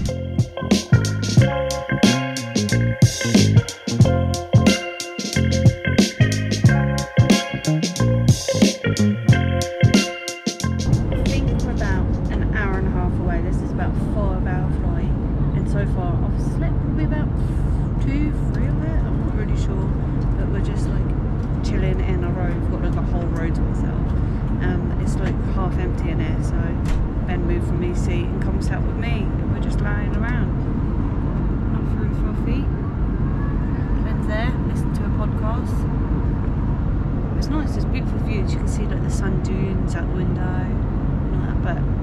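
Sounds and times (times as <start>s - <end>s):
airplane cabin engine drone: 10.6s - 42.0s
woman talking quietly: 11.1s - 30.5s, 33.4s - 35.8s.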